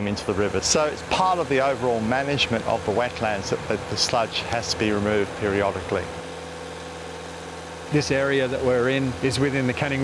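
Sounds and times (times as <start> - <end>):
engine running steady hum: 0.0 - 10.0.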